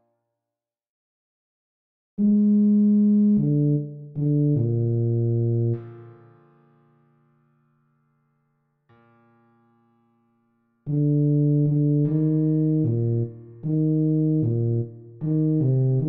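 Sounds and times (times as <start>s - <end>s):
computer tuba notes: 2.2s - 5.8s, 10.9s - 16.0s.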